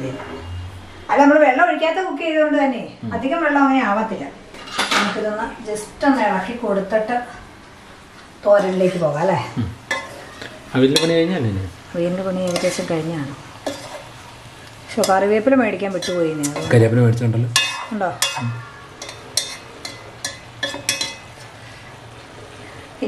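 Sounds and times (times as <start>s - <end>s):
metal spoon scraping pot: 12.5s - 12.9s, 13.6s - 14.1s, 17.6s - 21.3s.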